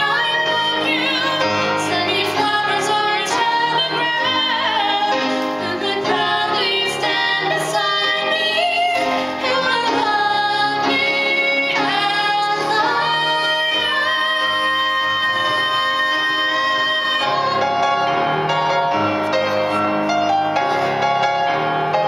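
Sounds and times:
woman singing with vibrato: 0.0 - 18.1
grand piano: 0.0 - 22.0.

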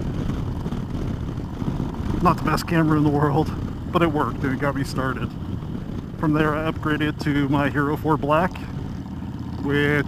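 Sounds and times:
motorcycle engine rumble: 0.0 - 10.0
wind noise: 0.0 - 10.0.

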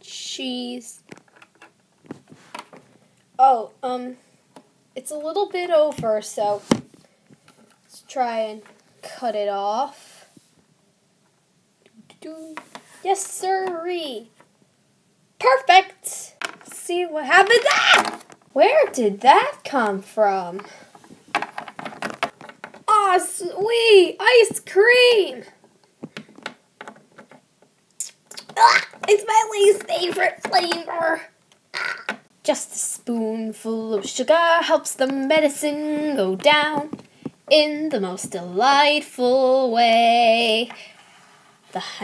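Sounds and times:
plastic toys clicking and tapping: 26.0 - 27.4.

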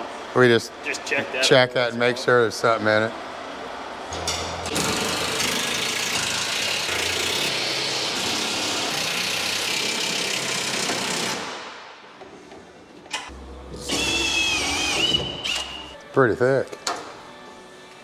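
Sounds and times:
engine running: 13.3 - 15.1.

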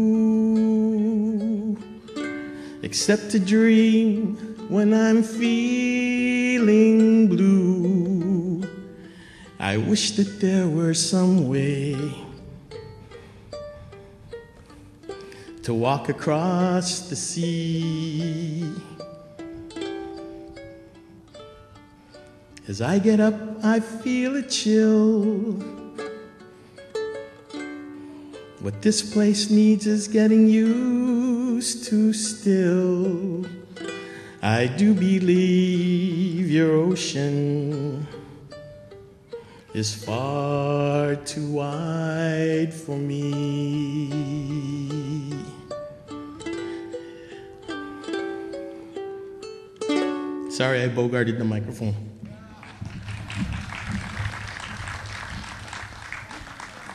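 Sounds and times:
ukulele chords strummed: 0.0 - 52.1
small audience clapping: 52.2 - 56.9.

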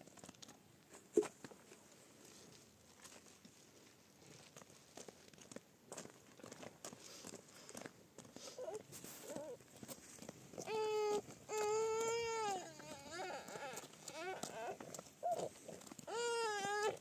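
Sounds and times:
footsteps on stony dirt track: 1.3 - 17.0.

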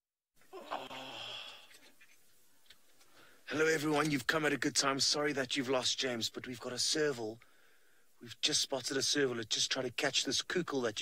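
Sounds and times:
faint steady background noise: 0.4 - 11.0
low sigh-like voice: 0.5 - 1.8.

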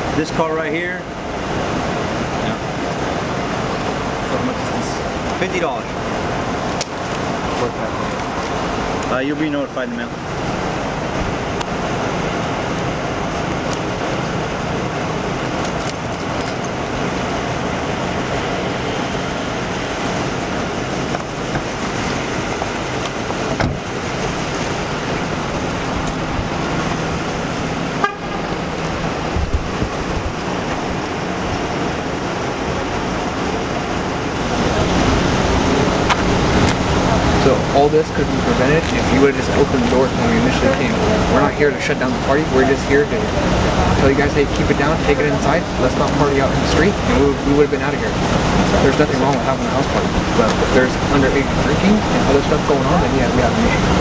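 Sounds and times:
car engine humming: 0.0 - 54.0.

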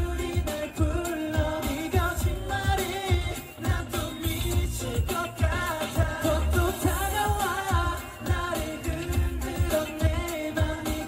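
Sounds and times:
heavy bass beat: 0.0 - 11.0
pop song through sound system: 0.0 - 11.0.

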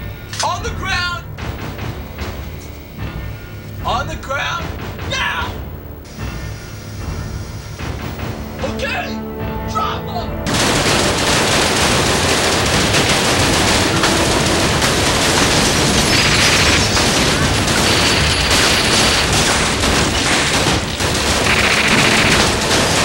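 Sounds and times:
rapid gunfire: 10.5 - 23.0.

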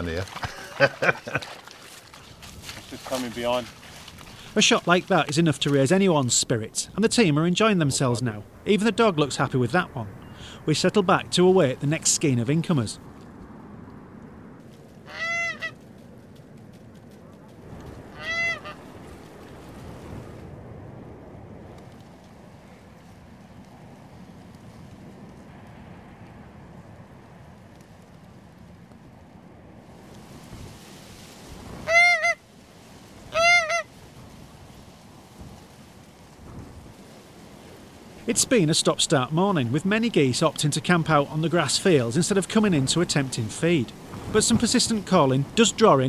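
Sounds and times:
faint outdoor hiss: 0.0 - 46.0
goose call honks: 15.1 - 15.8, 18.1 - 18.8, 31.8 - 32.4, 33.3 - 33.9.

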